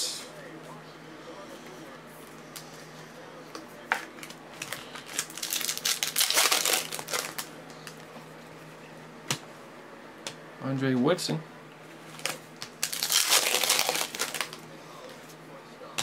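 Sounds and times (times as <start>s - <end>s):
foil wrapper crinkling: 4.2s - 8.0s, 12.1s - 14.7s.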